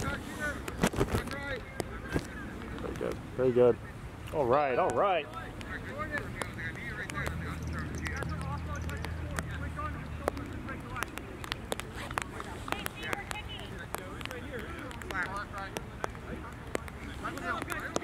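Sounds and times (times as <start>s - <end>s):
faint voices calling: 0.0s - 18.0s
ticks on plastic rain cover: 4.8s - 18.0s.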